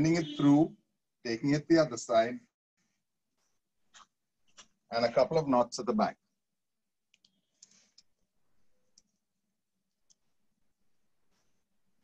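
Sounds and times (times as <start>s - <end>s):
soft rustle of cord and mesh: 11.0s - 12.0s.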